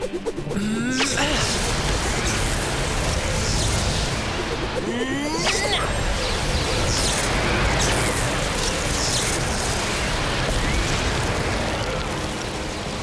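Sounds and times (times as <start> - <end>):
rumbling rush of noise: 0.0 - 13.0.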